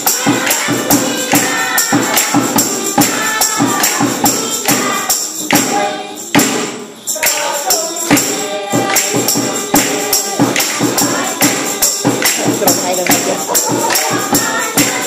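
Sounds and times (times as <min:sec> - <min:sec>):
group of voices singing: 0:00.0 - 0:15.0
percussion beat: 0:00.0 - 0:15.0.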